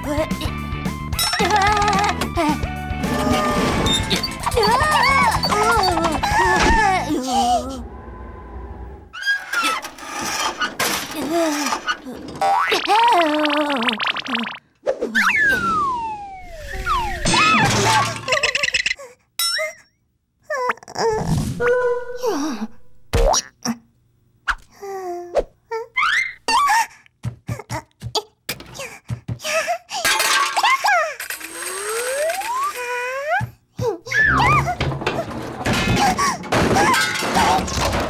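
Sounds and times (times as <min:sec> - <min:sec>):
high-pitched gibberish cry: 0:04.4 - 0:07.6
falling whistle glide: 0:15.2 - 0:17.3
cartoon character warbling: 0:34.1 - 0:34.8.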